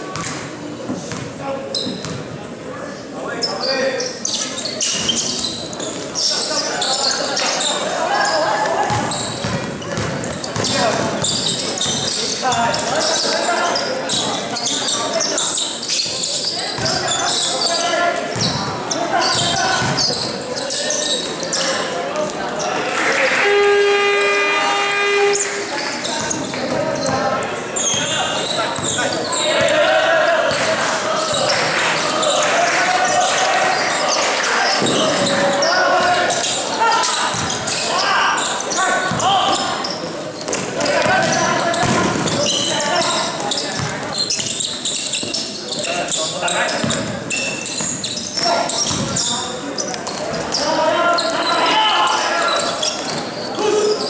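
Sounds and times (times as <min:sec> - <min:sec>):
basketball bouncing on court: 0:00.1 - 0:02.4, 0:08.9 - 0:12.1, 0:18.3 - 0:20.3, 0:28.7 - 0:29.0, 0:34.8 - 0:35.5, 0:37.3 - 0:37.8, 0:39.0 - 0:39.6, 0:40.4 - 0:42.7, 0:43.3 - 0:44.5, 0:46.8 - 0:47.2, 0:48.8 - 0:49.3
people calling out: 0:22.6 - 0:40.0, 0:48.4 - 0:54.0.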